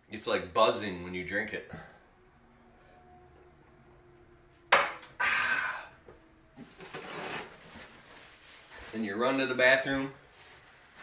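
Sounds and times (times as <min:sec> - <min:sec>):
paper towel rustling on face: 0:06.8 - 0:11.0.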